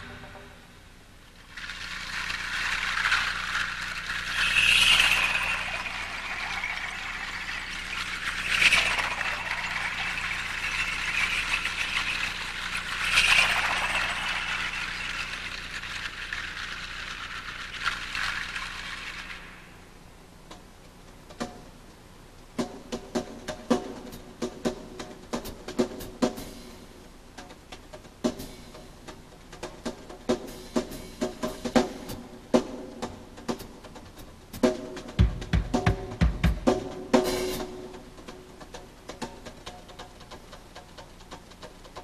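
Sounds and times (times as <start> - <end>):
quick drum hits: 22.6 - 42.0.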